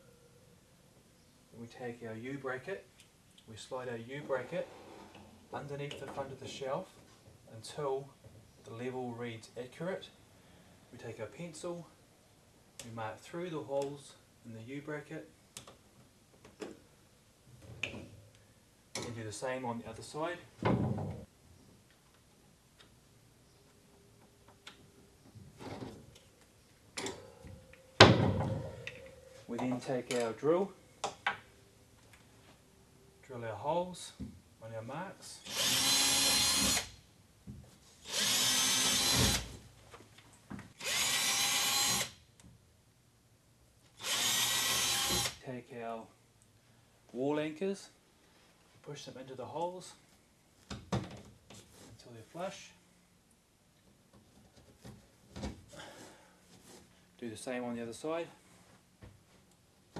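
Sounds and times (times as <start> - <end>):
cordless drill drilling into wall: 35.5 - 36.9, 38.1 - 39.5, 40.8 - 42.2, 44.0 - 45.4.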